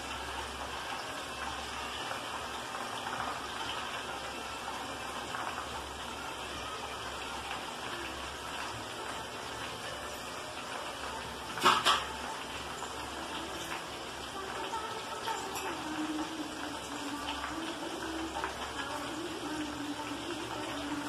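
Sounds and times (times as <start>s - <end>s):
liquid boiling and bubbling: 0.0s - 21.0s.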